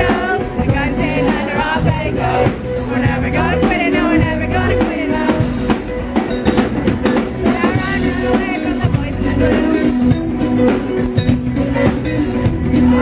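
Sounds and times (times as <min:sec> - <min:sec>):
live rock band playing: 0:00.0 - 0:13.0.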